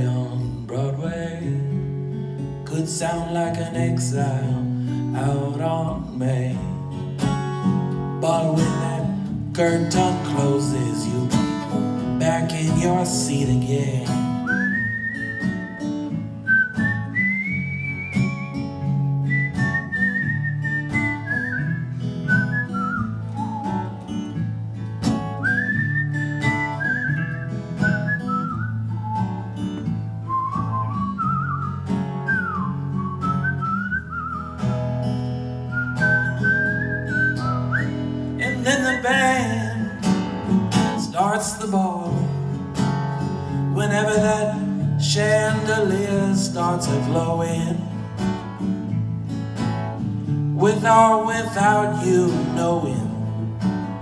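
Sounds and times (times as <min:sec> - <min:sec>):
second guitar: 0:00.0 - 0:54.0
strummed acoustic guitar: 0:00.0 - 0:54.0
whistled melody: 0:14.4 - 0:24.5, 0:25.3 - 0:34.9, 0:35.6 - 0:39.2, 0:39.8 - 0:40.4.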